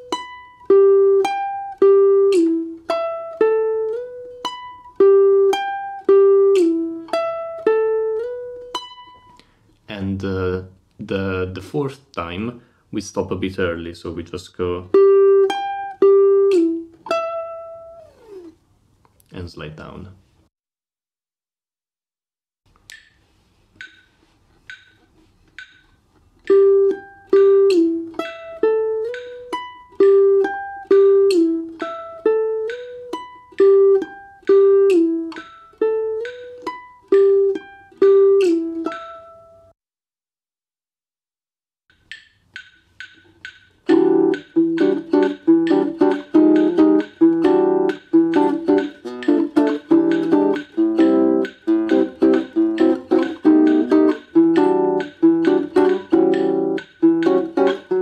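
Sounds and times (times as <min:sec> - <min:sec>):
guitar strumming fast chords: 0:43.9 - 0:58.0.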